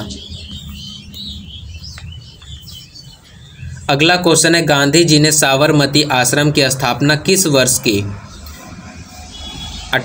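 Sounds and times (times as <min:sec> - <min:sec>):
faint bird chirps: 0:00.0 - 0:04.2.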